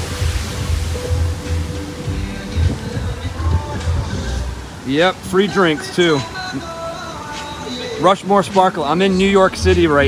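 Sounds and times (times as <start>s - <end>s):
wind buffeting microphone: 0.0s - 4.8s
background music: 0.0s - 10.0s.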